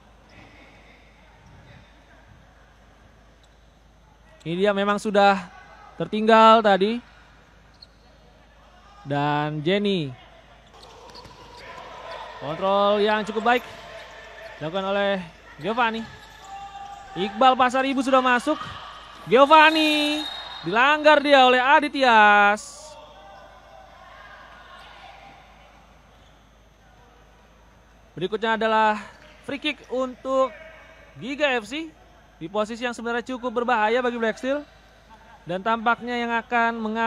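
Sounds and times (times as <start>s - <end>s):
crowd noise hum in hall: 0.0s - 37.0s
distant indistinct voices: 10.2s - 21.6s.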